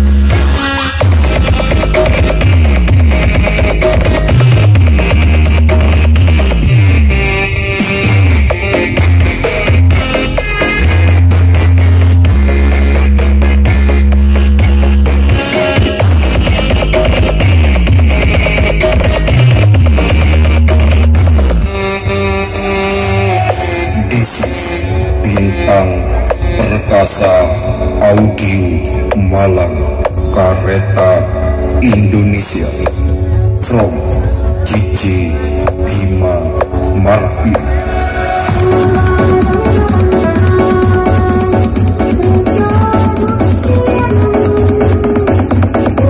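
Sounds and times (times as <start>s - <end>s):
heavy sliding sub-bass: 0.0s - 46.0s
loud electronic dance music: 0.0s - 46.0s.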